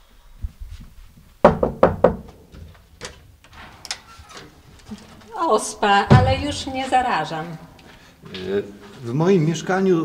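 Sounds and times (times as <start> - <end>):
knocking on a door: 1.4 - 2.7, 6.1 - 6.6.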